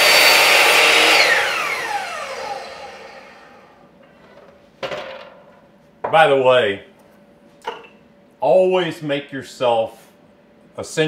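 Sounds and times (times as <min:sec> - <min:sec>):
miter saw cutting wood: 0:00.0 - 0:03.7
saw blade spinning down: 0:00.0 - 0:03.8.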